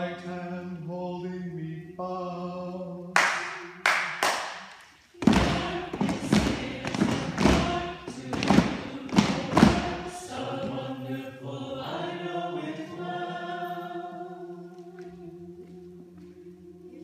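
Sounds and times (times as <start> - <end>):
group singing unaccompanied: 0.0 - 17.0.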